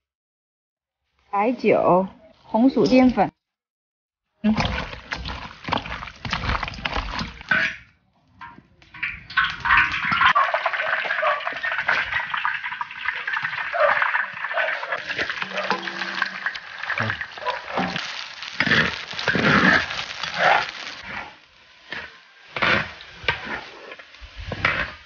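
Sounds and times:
hands kneading wet chicken: 4.5s - 7.5s, 13.0s - 21.2s
chicken sizzling in hot oil: 8.9s - 25.0s.

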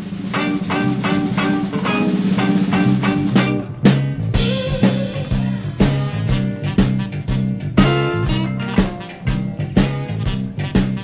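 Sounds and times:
bass: 0.0s - 11.0s
drums: 0.0s - 11.0s
electric guitar picking: 0.0s - 11.0s.

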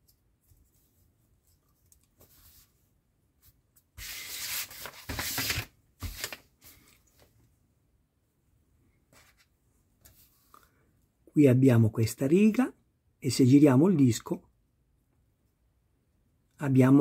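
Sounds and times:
hands rubbing paper: 3.5s - 6.8s.

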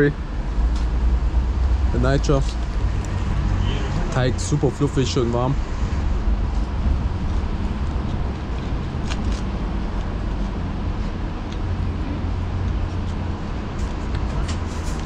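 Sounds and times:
street traffic rumble: 0.0s - 15.0s.

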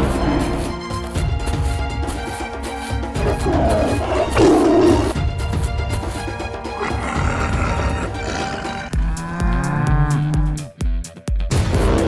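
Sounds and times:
background music with steady beat: 0.0s - 12.0s
cow mooing: 6.9s - 10.7s.

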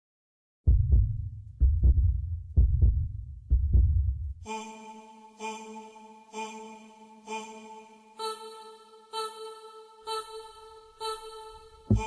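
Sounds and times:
low double thumps: 0.7s - 4.4s.

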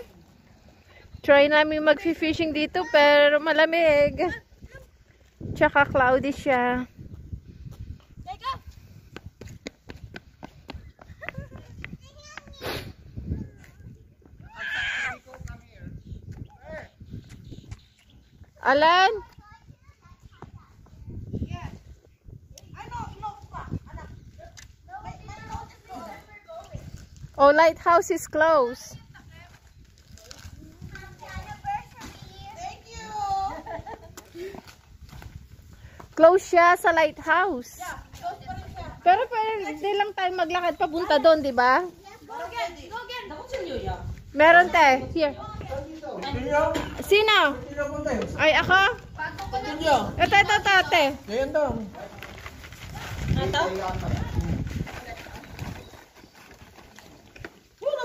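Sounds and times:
wind rumble on microphone: 0.7s - 39.6s, 43.1s - 56.8s.

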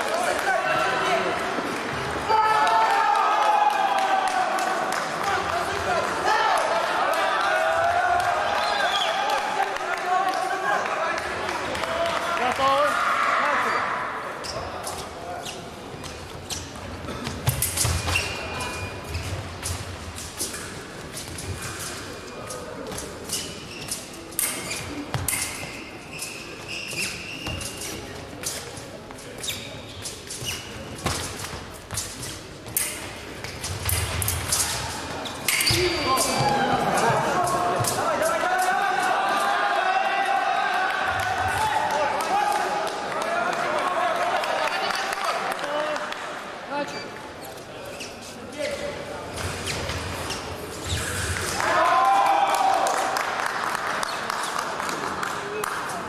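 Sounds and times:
fencing blades clicking and ringing: 19.6s - 26.4s, 31.3s - 38.8s.

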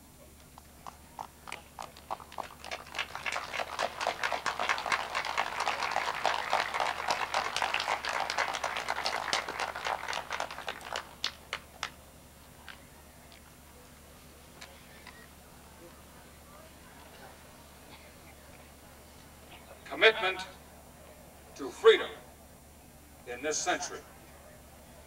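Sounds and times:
audience applauding: 0.8s - 12.0s.

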